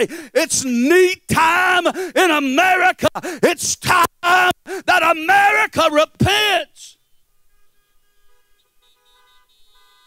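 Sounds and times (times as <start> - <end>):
faint car horns honking: 7.0 - 10.0.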